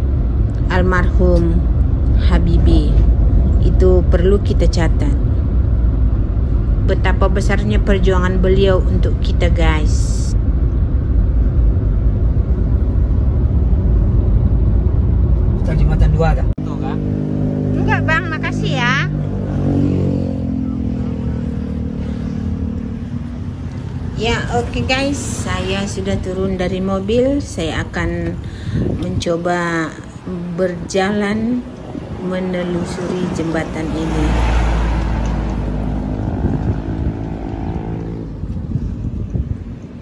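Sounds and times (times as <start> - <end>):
traffic rumble: 0.0 - 40.0
vehicle engine running: 0.0 - 40.0.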